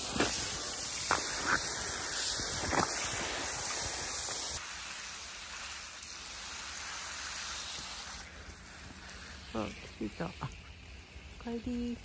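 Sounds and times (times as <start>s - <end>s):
hose water spraying on boots: 0.0s - 12.0s.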